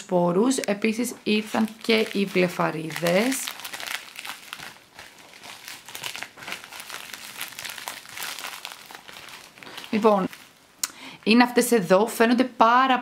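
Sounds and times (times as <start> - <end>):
plastic packaging crackling: 0.5 - 12.0.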